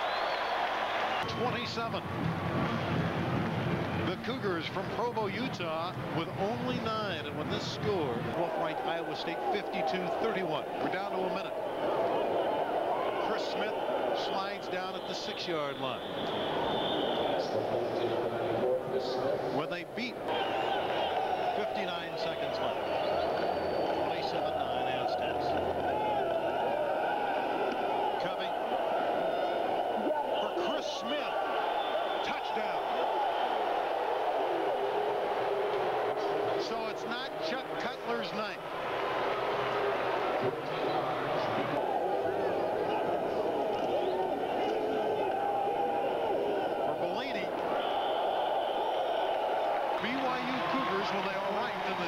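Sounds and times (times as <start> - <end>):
stadium crowd din: 0.0 - 52.0.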